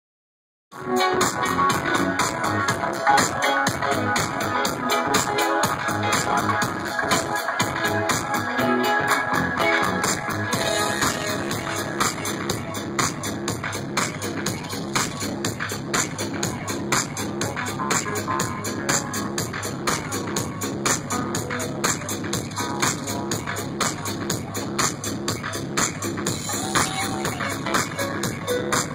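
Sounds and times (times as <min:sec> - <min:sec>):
live electronic dance music: 0:00.7 - 0:28.9.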